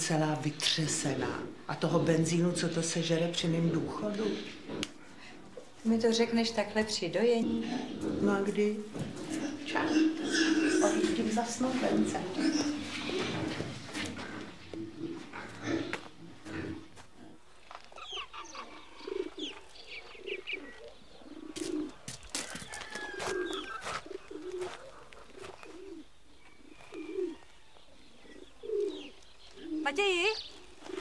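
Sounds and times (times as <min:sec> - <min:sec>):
pigeons cooing: 0:00.0 - 0:31.0
small birds chirping: 0:00.0 - 0:31.0.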